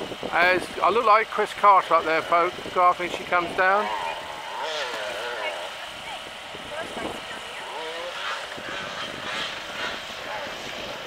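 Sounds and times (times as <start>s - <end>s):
distant motorcycle engine droning: 0.0s - 11.0s.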